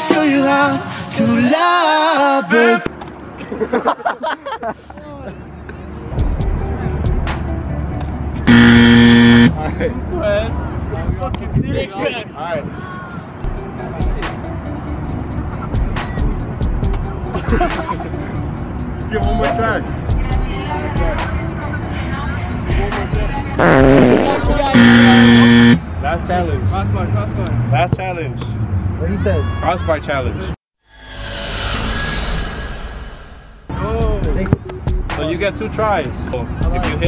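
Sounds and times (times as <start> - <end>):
wrong answer buzzer: 8.5 - 9.6, 23.6 - 25.8.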